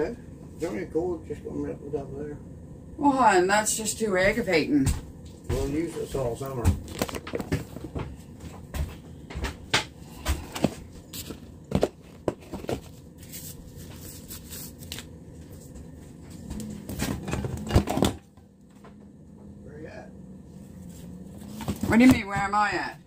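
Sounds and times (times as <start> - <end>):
plastic gloves crinkling: 6.8 - 8.0, 10.8 - 17.7.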